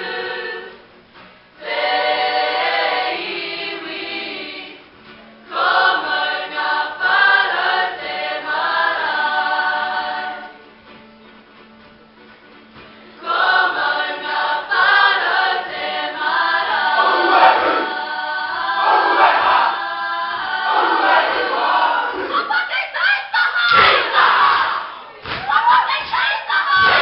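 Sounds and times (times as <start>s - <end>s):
group singing in unison: 0.0s - 0.8s, 1.6s - 4.8s, 5.5s - 10.6s, 13.2s - 22.6s, 23.7s - 25.1s, 26.6s - 27.0s.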